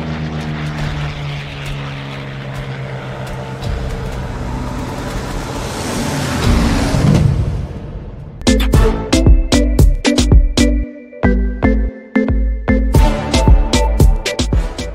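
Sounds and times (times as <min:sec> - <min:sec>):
piston aircraft engine droning: 0:00.0 - 0:08.4.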